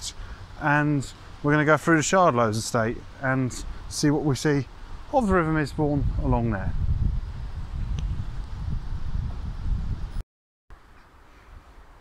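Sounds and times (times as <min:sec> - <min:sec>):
wind buffeting microphone: 0:04.9 - 0:10.2.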